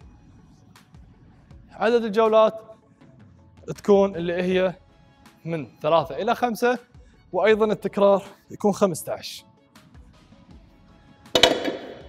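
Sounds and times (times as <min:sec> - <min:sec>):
bar and plates rattling: 0:11.4 - 0:12.0
barbell landing on gym floor: 0:11.4 - 0:12.0.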